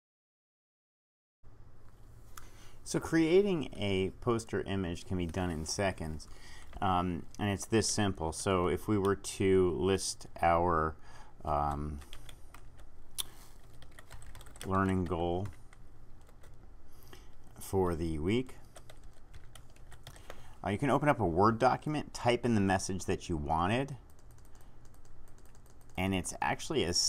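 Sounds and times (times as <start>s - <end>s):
steady low hum: 1.5s - 27.0s
keyboard keys clicking: 12.1s - 15.6s, 24.0s - 26.1s.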